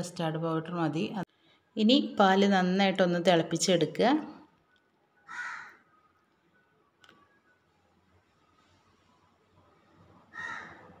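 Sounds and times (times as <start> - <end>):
crow cawing: 5.3 - 5.9, 10.3 - 10.9.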